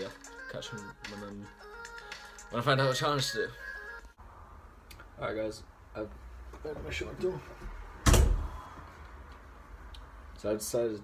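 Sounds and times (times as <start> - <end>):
loud thump: 8.0 - 8.6.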